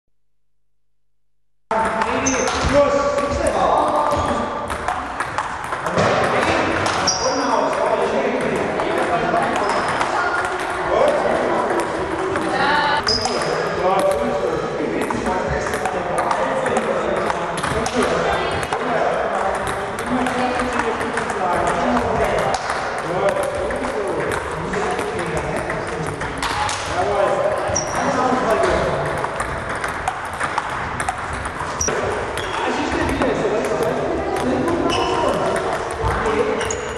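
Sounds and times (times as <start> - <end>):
table tennis balls clicking: 1.7 - 14.3, 15.0 - 36.9
voices talking: 5.9 - 22.4
table tennis ball clicking: 28.6 - 36.8.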